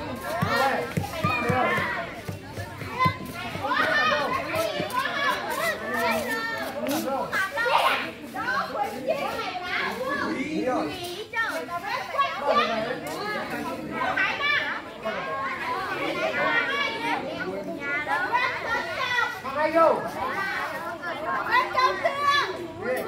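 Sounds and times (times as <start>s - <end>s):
children chattering: 0.0s - 23.0s.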